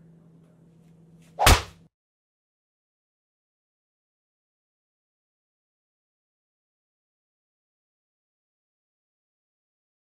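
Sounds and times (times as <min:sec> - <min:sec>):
sharp smack of a blow: 0:01.4 - 0:01.8.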